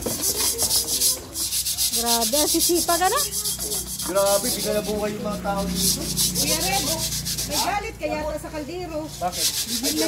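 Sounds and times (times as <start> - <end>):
metal pot scrubbed with sand: 0.0 - 8.1, 8.9 - 10.0.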